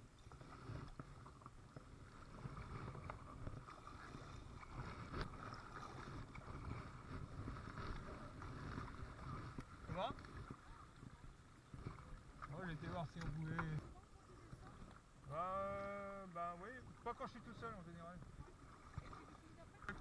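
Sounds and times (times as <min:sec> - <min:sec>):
wind rumble on microphone: 0:00.0 - 0:12.5
paddle dipping in water: 0:00.0 - 0:20.0.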